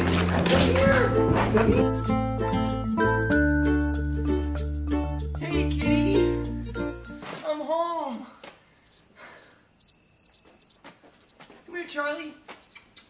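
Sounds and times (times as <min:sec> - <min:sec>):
background music: 0:00.0 - 0:07.3
person's voice: 0:05.4 - 0:06.3
cricket chirping: 0:06.6 - 0:13.0.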